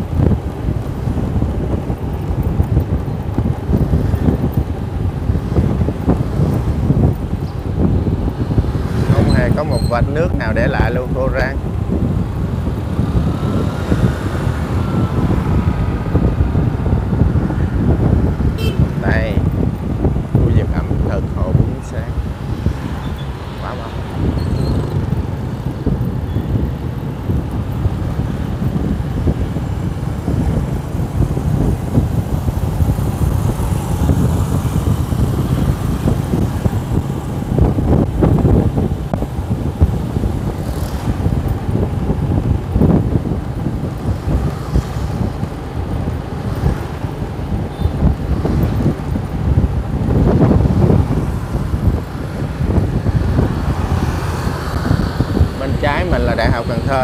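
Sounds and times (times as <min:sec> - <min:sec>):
road and engine drone: 0:00.0 - 0:57.0
vehicles passing: 0:00.0 - 0:57.0
wind buffeting microphone: 0:00.0 - 0:57.0.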